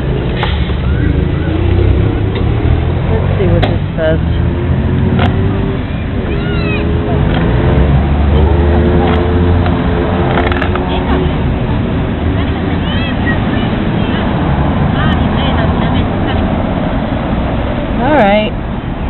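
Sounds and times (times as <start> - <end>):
people's voices: 0.0 - 18.6
vehicle engine rumbling: 0.0 - 19.0.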